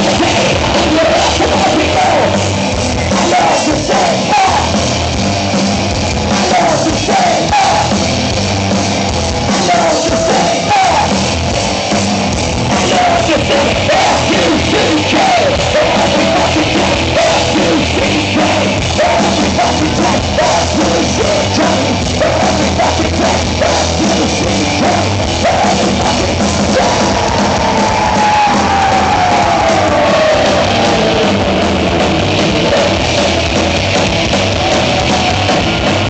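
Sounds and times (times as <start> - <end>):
person singing: 0.0 - 4.8, 6.3 - 8.0, 9.5 - 11.3, 12.7 - 33.4
bass guitar: 0.0 - 36.0
distorted electric guitars: 0.0 - 36.0
drums: 0.0 - 36.0.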